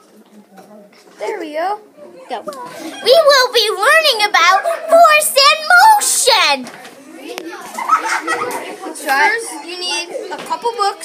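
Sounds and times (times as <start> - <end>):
children's voices: 1.2 - 11.0.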